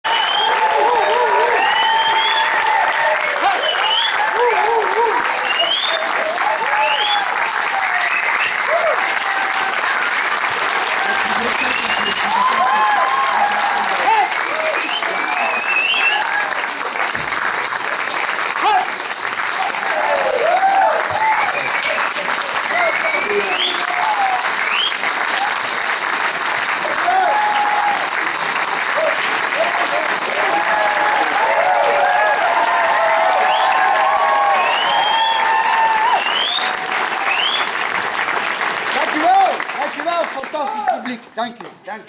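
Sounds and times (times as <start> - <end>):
cheers and whoops: 0.0 - 16.8, 18.6 - 25.8, 26.8 - 28.3, 28.9 - 37.8
audience applause: 0.0 - 41.4.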